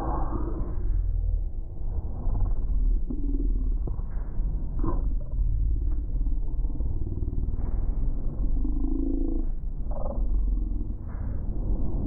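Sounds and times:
heavy low rumble: 0.0 - 12.0.

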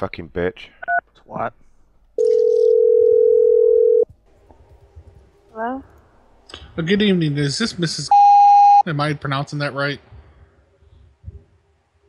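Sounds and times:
telephone ringback tone: 2.2 - 4.0.

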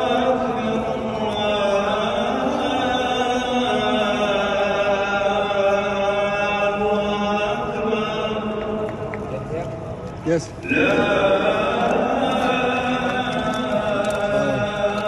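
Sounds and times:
faint crowd murmur: 8.2 - 15.0
man chanting: 10.6 - 15.0.

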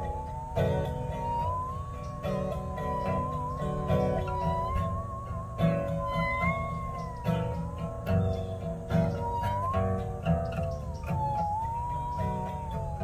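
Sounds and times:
musical saw wavering melody: 0.0 - 13.0
strummed guitar chords: 0.0 - 13.0.

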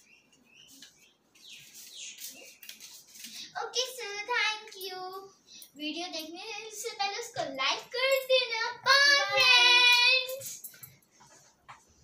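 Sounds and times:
child singing: 6.0 - 10.6.

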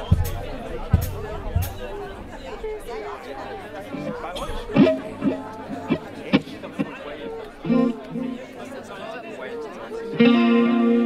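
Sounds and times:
low thumps from instruments: 0.0 - 2.1
audience chatter: 0.0 - 11.0.

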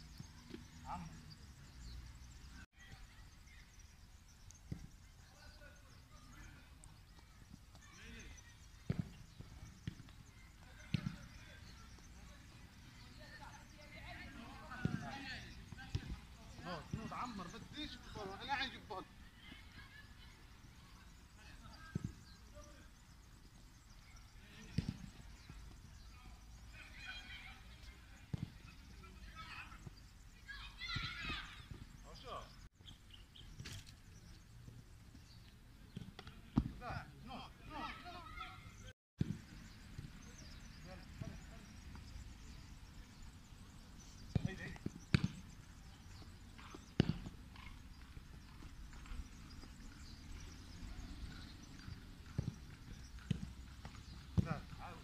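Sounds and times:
football thumps: 44.3 - 45.5, 46.6 - 47.7.

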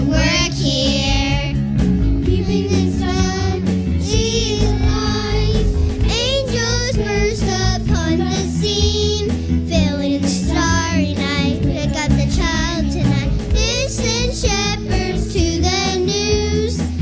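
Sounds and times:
children singing: 0.0 - 1.6, 2.3 - 9.2
instrumental accompaniment: 0.0 - 17.0.

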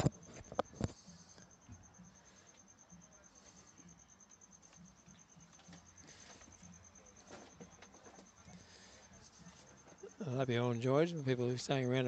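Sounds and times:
rapidly pulsing high whine: 0.0 - 12.0.

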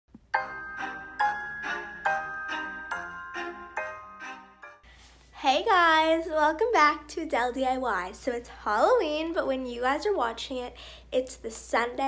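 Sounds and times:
bell-like melody: 0.3 - 4.8.

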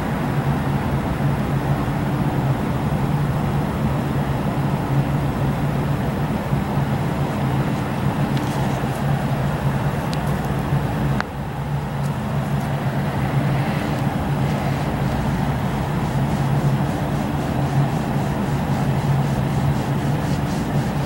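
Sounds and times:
low droning hum: 0.0 - 21.0
road traffic: 0.0 - 21.0.

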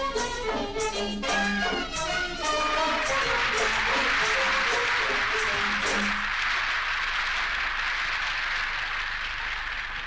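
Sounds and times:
audience applauding: 2.4 - 10.0.

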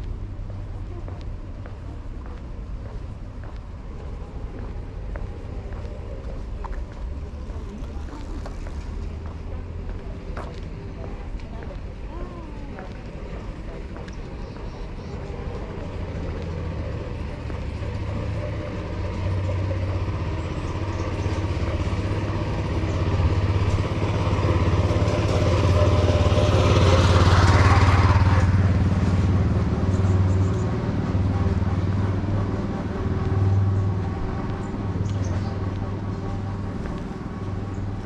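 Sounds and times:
small truck driving past: 14.9 - 38.0.

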